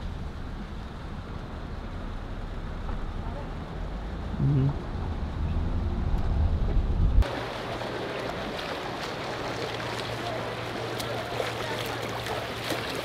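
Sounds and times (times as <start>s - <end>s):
car driving rumble: 0.0s - 13.0s
swimmer splashing water: 7.2s - 13.0s.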